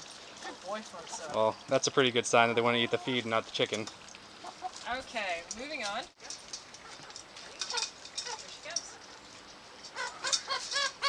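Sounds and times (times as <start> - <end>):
chickens clucking: 1.0 - 4.9, 6.8 - 11.0
hen squawking: 9.9 - 11.0.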